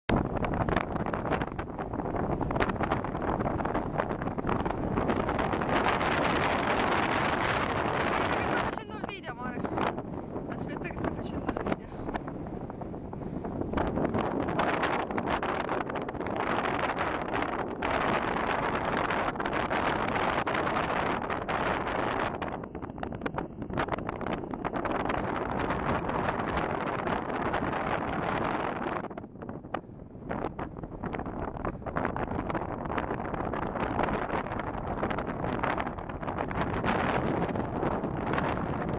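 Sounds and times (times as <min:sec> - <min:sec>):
wind buffeting microphone: 0:00.1 - 0:38.9.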